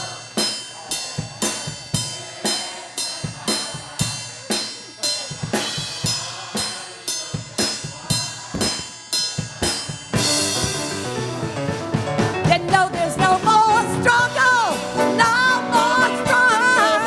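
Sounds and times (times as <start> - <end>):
cymbal crash ringing: 0.0 - 11.2
bass drum and snare beat: 1.2 - 17.0.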